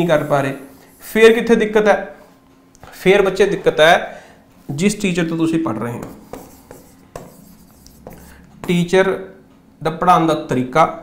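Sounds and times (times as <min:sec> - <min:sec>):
pen scratching on board: 0:06.0 - 0:08.8
pen tapping on board: 0:06.0 - 0:08.8.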